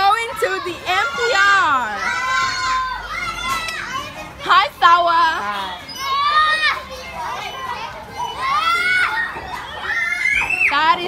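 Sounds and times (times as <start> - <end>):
children shouting: 0.0 - 11.0
children's voices: 0.0 - 11.0.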